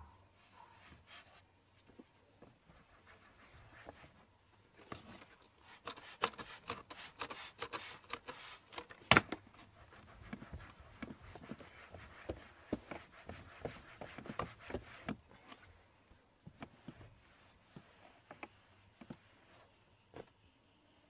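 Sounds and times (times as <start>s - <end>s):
towel rubbing plastic: 9.7s - 15.2s.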